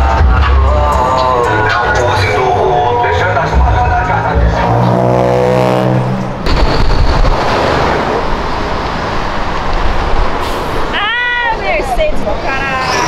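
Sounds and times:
background music: 0.0s - 6.0s
car passing close by: 4.3s - 10.9s.

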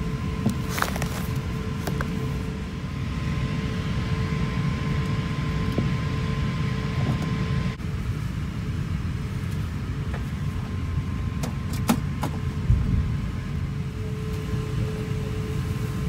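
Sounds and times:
airliner cabin rumble: 0.0s - 16.0s
faint steady hums: 0.0s - 16.0s.

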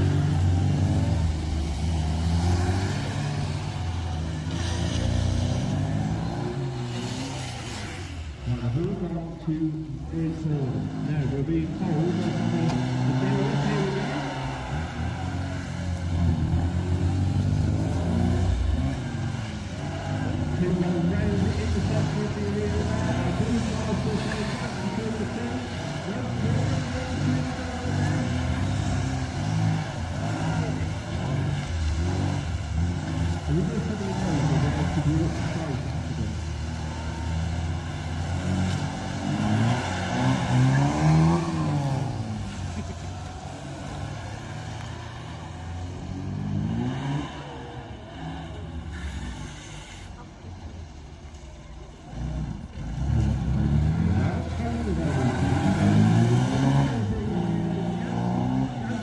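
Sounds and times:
car engines revving: 0.0s - 59.0s.

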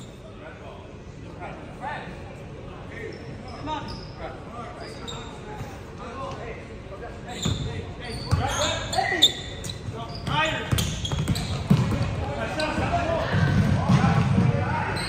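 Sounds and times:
murmur of voices: 0.0s - 15.0s
shoe squeaks: 3.0s - 5.8s, 7.2s - 12.9s
basketball bouncing on hardwood: 10.7s - 12.2s.

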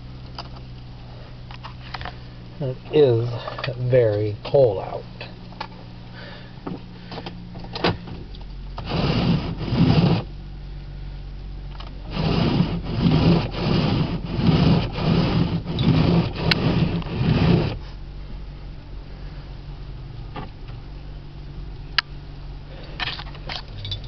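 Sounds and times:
car engine idling: 0.0s - 24.0s
wipers scraping icy windshield: 8.8s - 10.3s, 12.0s - 18.0s.

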